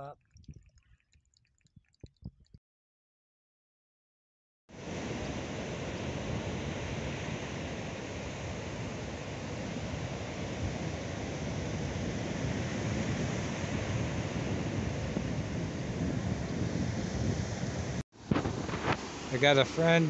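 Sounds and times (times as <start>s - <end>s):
wind buffeting microphone: 0.0s - 2.6s, 5.1s - 19.6s
surf washing onto beach: 4.8s - 20.0s.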